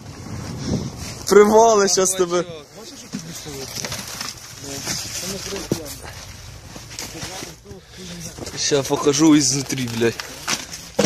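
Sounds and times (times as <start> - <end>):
men talking quietly: 1.3 - 10.5.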